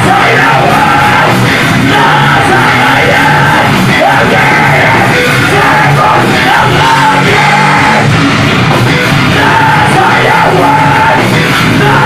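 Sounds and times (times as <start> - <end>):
vocalist yelling: 0.0 - 8.1, 9.3 - 12.0
distorted electric guitar: 0.0 - 12.0.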